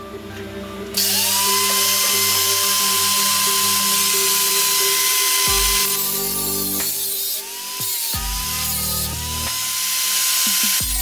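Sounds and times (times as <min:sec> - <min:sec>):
angle grinder motor whine: 0:00.0 - 0:11.0.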